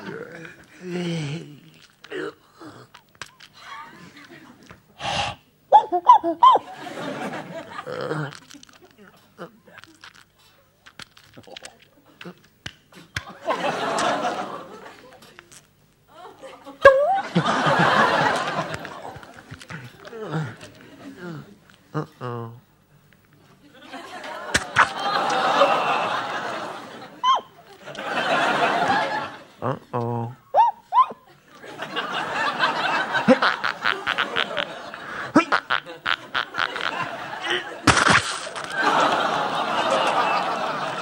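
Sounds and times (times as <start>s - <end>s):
man's low vocal sound: 0.0s - 3.0s
man's mouth click: 2.9s - 3.6s
audience laughter: 6.5s - 8.9s, 13.2s - 15.3s, 16.2s - 21.2s, 23.6s - 29.6s, 31.3s - 37.9s, 38.5s - 41.0s.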